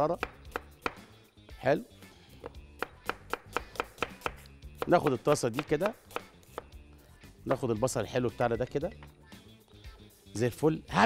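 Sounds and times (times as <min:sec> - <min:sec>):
soft background music: 0:00.0 - 0:11.0
cleaver chopping on wooden board: 0:00.1 - 0:01.1, 0:02.4 - 0:06.8.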